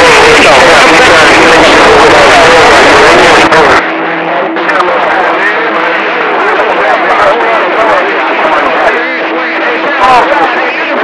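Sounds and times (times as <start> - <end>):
garbled radio voices: 0.0 - 11.0
steady radio tone: 0.0 - 11.0.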